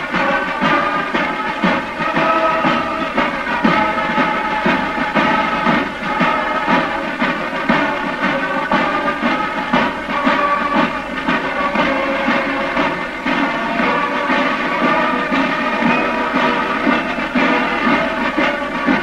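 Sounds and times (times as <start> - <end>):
marching drum beat: 0.0 - 19.0
wind instruments sustained notes: 0.0 - 19.0.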